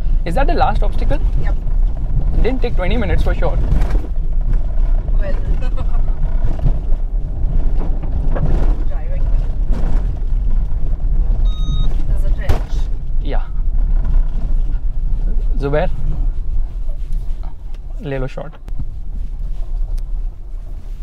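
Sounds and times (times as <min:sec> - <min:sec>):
low rumble of tyres and engine: 0:00.0 - 0:21.0
short electronic beep: 0:11.4 - 0:12.0.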